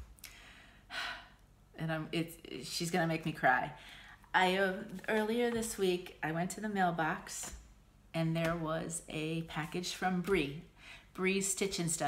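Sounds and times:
woman speaking: 0:01.8 - 0:12.0.

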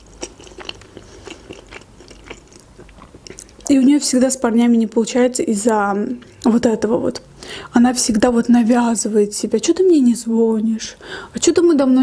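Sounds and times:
wet chewing clicks and smacks: 0:00.0 - 0:03.7.

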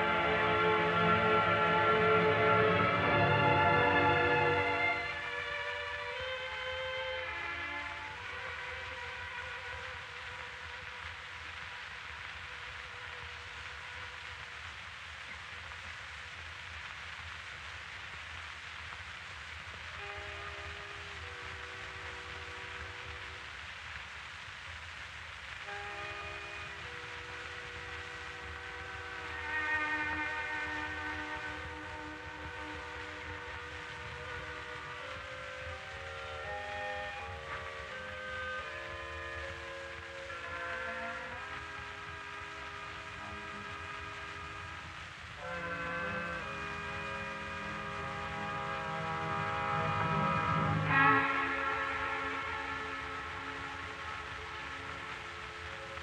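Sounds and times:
orchestra playing held chords: 0:00.0 - 0:10.0, 0:25.7 - 0:56.0
recording hiss: 0:00.0 - 0:56.0.

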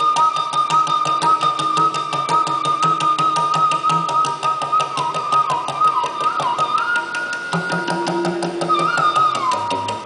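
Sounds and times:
bamboo flute melody: 0:00.0 - 0:10.0
rapid tabla strokes: 0:00.0 - 0:10.0.

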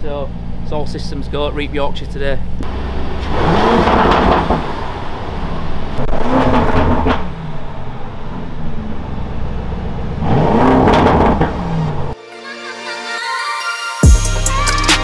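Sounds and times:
car engine rumbling and revving: 0:00.0 - 0:12.2.

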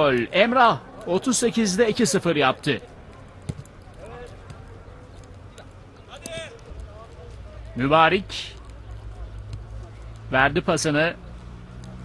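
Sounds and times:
players shouting: 0:00.0 - 0:11.5
ball being kicked: 0:03.4 - 0:04.7.

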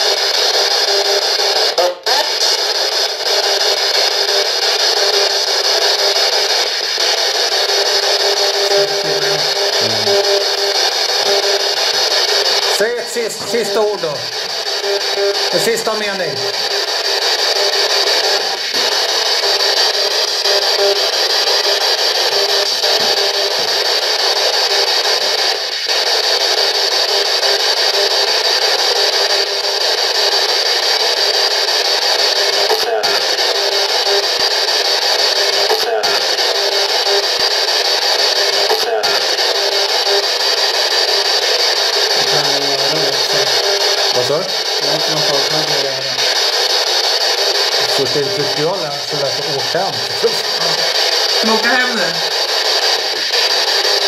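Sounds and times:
radio static: 0:00.0 - 0:54.0
snatches of broadcast voices: 0:00.1 - 0:54.0.

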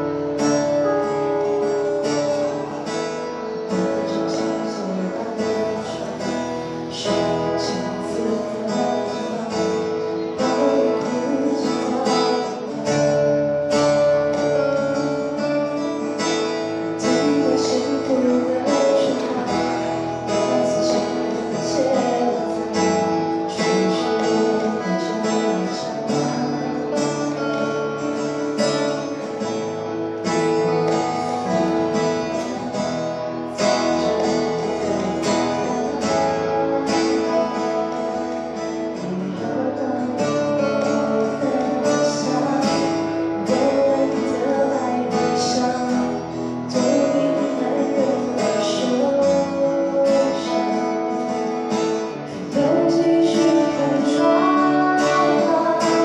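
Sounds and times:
acoustic guitars strumming: 0:00.0 - 0:56.0.

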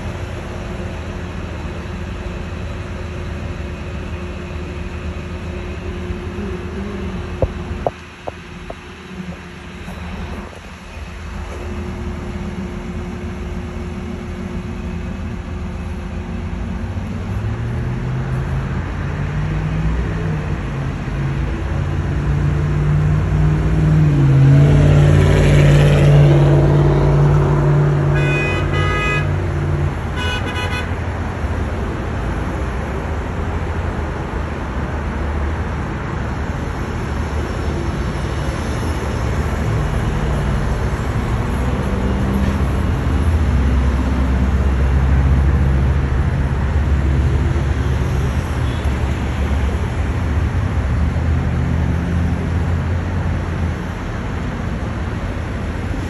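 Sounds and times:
street traffic passing: 0:00.0 - 0:56.0
car horn: 0:28.1 - 0:29.4, 0:30.1 - 0:31.0.

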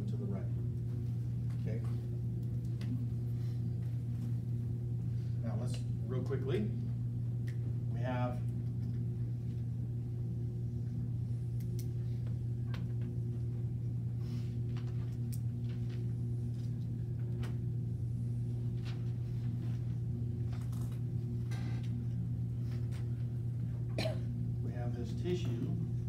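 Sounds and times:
low room hum: 0:00.0 - 0:26.0.

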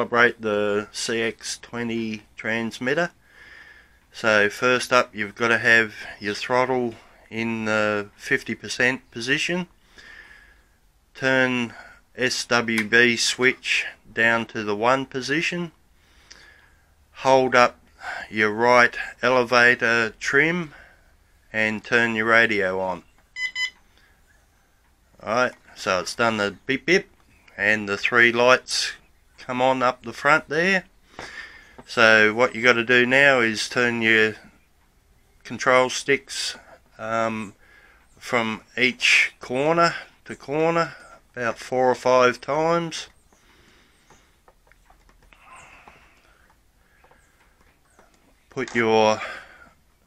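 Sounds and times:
short transmitter beeps: 0:23.4 - 0:23.9
control sticks clicking and rubbing: 0:43.1 - 0:48.9.

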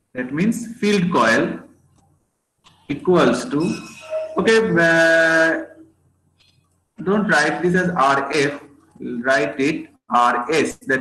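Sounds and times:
man's drawn-out vowel: 0:02.9 - 0:05.7, 0:07.0 - 0:11.0.

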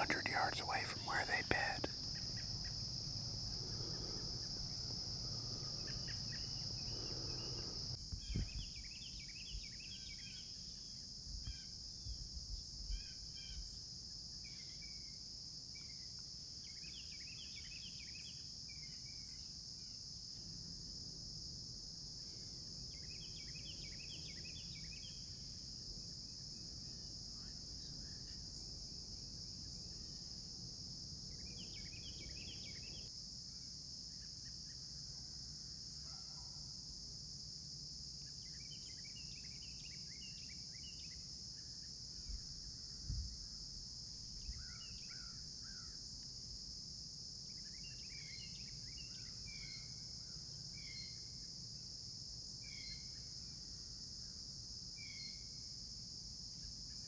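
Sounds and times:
insects chirping chorus: 0:00.0 - 0:57.0.

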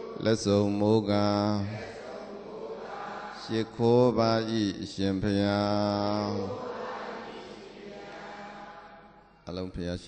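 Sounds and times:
man chanting: 0:00.0 - 0:02.0, 0:03.3 - 0:06.6, 0:09.5 - 0:10.0.

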